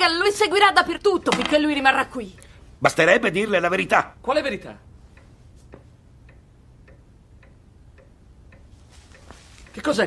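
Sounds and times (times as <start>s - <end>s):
clock ticking: 0.0s - 10.0s
low steady hum: 0.0s - 10.0s.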